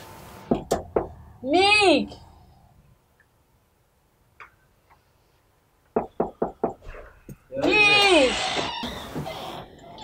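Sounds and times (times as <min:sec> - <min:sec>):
knocking on wooden door: 0:06.0 - 0:06.8.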